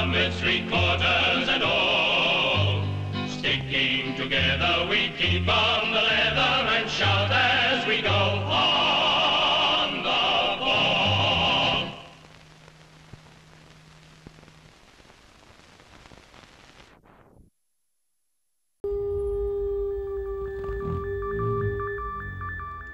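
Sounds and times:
choir singing: 0.0s - 12.1s
film soundtrack hiss and hum: 0.0s - 17.6s
electronic ident music: 18.8s - 22.9s.

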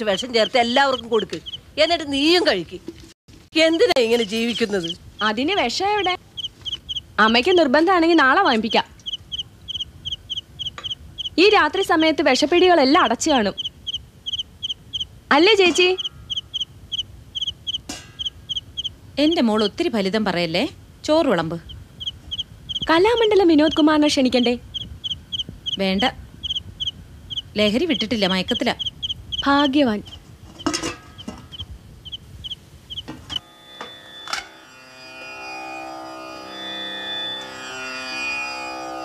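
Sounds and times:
cricket chirping: 0.0s - 2.2s, 3.8s - 7.6s, 8.4s - 12.1s, 13.2s - 19.4s, 21.6s - 34.4s
bird clucking call: 0.0s - 2.4s, 4.0s - 7.6s, 8.6s - 12.1s, 13.4s - 19.0s, 21.6s - 23.8s, 24.7s - 33.4s
string instrument note: 33.4s - 39.0s.

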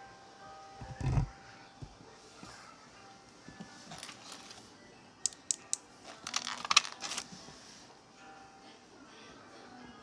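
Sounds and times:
plastic crinkling: 6.1s - 7.3s.

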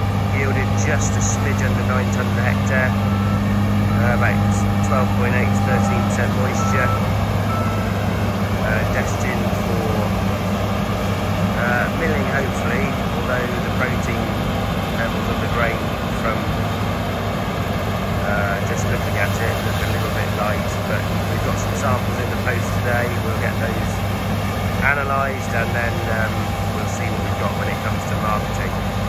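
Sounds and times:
combine harvester engine drone: 0.0s - 29.0s
constant rushing noise: 0.0s - 29.0s.

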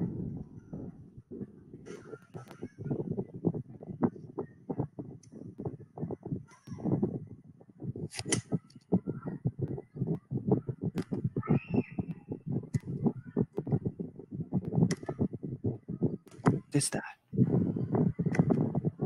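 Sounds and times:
hand rubbing on microphone: 0.0s - 19.0s.

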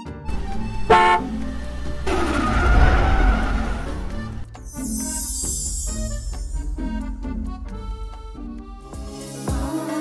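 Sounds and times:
car engine running: 0.3s - 4.8s
car horn toot: 0.8s - 1.4s.

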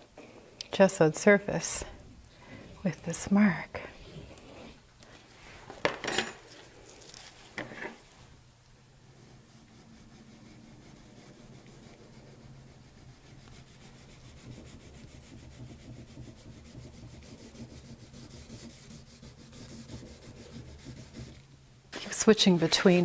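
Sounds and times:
drawing stick scratching wax: 2.9s - 4.8s, 9.2s - 23.0s.

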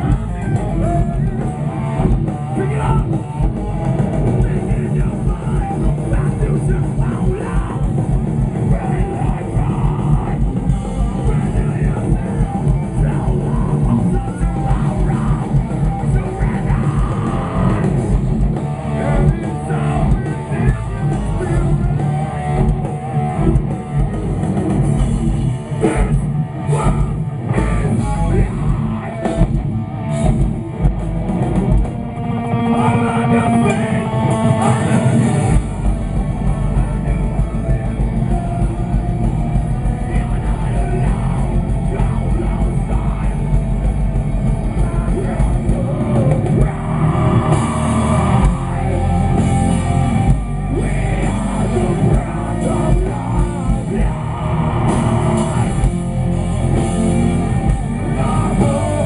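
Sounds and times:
heavy metal band playing live: 0.0s - 59.0s
rapid kick drums: 35.2s - 59.0s.

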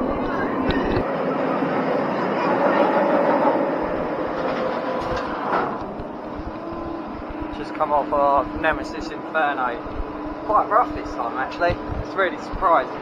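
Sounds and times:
roller coaster rumbling on track: 0.0s - 13.0s.

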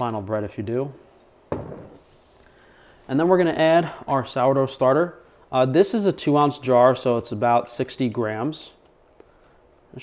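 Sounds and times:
bottle set down on wooden table: 1.5s - 2.0s.

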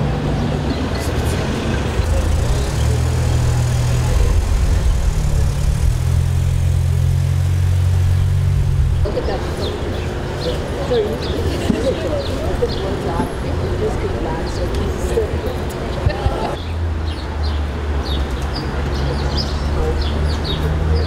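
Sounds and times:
vehicle engine running: 0.0s - 12.8s
street traffic: 0.0s - 21.0s
voices: 0.0s - 21.0s.

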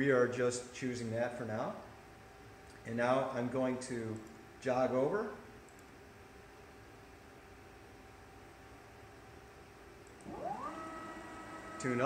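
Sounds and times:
faint steady hum: 0.0s - 12.0s
gantry motors whining: 10.2s - 12.0s.

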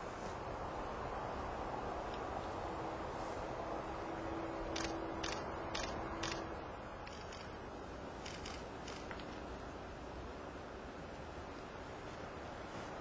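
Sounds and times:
outdoor background noise: 0.0s - 13.0s
camera shutter clicks: 4.8s - 6.4s, 8.2s - 9.1s.

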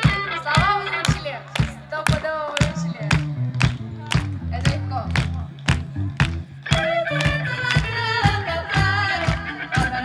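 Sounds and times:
bass line: 0.0s - 10.0s
drum beat: 0.0s - 10.0s
funk band playing: 0.0s - 10.0s.

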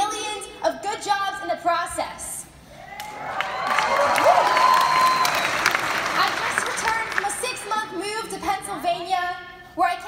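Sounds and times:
people cheering: 2.8s - 7.3s
audience applauding: 3.0s - 7.4s.

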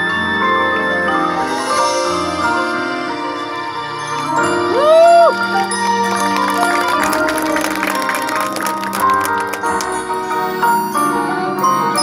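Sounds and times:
mallet percussion: 0.0s - 12.0s
marching band playing: 5.4s - 10.6s.

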